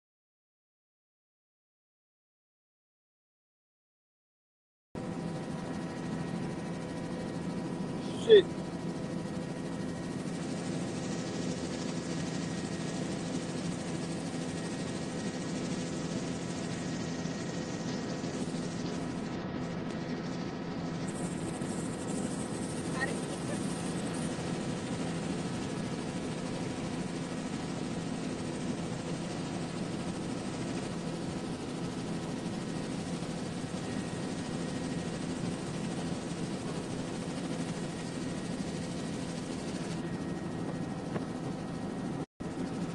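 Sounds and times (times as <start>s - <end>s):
helicopter rotor and engine drone: 5.0s - 42.9s.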